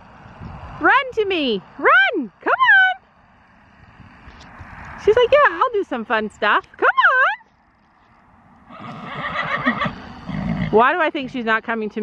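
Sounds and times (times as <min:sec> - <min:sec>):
horse whinnying: 0:08.7 - 0:10.9.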